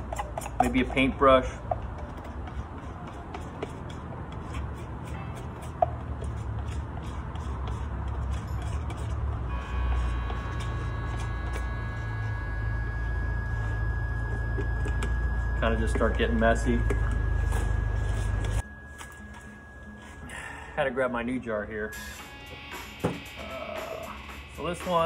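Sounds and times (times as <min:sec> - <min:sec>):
palette knife scraping plastic jar: 0:00.0 - 0:12.4
low rumble with high hum: 0:06.2 - 0:20.7.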